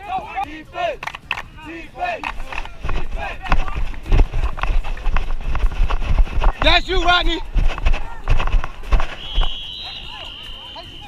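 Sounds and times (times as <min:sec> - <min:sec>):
indistinct voices: 0:00.0 - 0:05.6
footfalls running on grass: 0:02.1 - 0:11.0.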